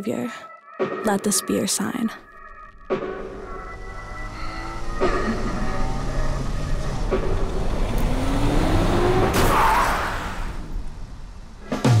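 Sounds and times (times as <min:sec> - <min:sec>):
background music: 0:00.0 - 0:10.8
car engine revving: 0:02.7 - 0:12.0.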